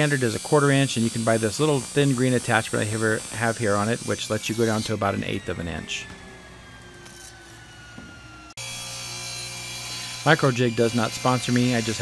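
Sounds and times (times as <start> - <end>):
table saw running: 0.0 - 12.0
whine dropping in pitch: 4.2 - 8.6.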